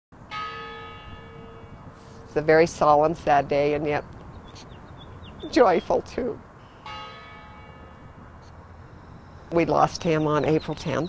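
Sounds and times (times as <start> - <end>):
large bell tolling: 0.3 - 3.3, 6.8 - 8.3.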